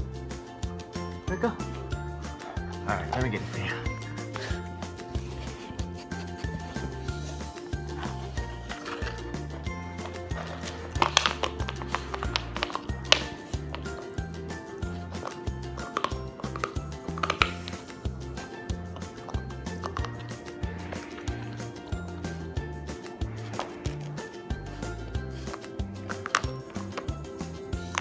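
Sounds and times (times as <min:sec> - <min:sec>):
background music with steady beat: 0:00.0 - 0:28.0
puppy crunching ice: 0:07.9 - 0:22.2, 0:23.4 - 0:28.0.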